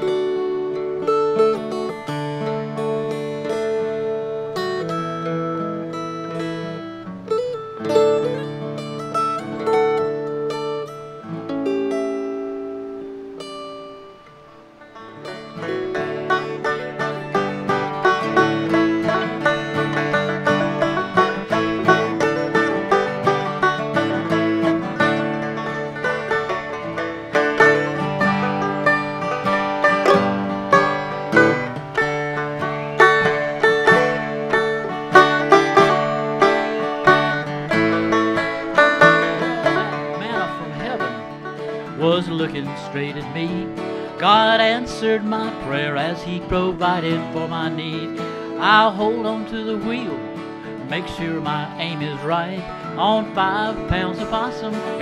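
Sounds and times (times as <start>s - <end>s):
banjo-like plucked dulcimer: 0.0s - 11.2s, 14.8s - 55.0s
acoustic guitar: 0.0s - 55.0s
mountain dulcimer: 14.7s - 55.0s.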